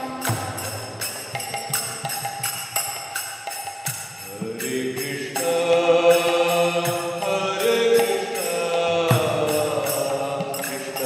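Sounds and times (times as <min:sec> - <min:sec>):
devotional chanting: 0:00.0 - 0:11.0
drum strokes: 0:00.0 - 0:11.0.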